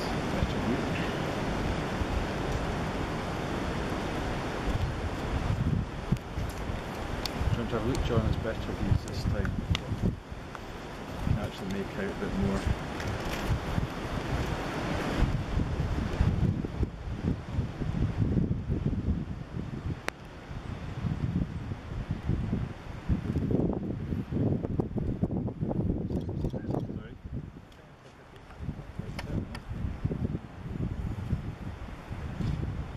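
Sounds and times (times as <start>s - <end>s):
wind buffeting microphone: 0.0s - 32.9s.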